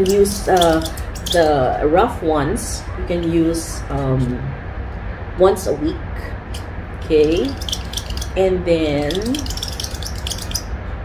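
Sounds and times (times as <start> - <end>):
steady low hum: 0.0 - 11.0
person speaking: 7.0 - 9.5.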